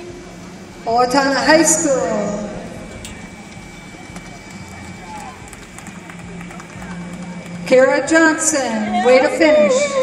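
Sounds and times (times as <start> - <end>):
distant voices and chatter: 0.0 - 10.0
low steady hum: 0.0 - 10.0.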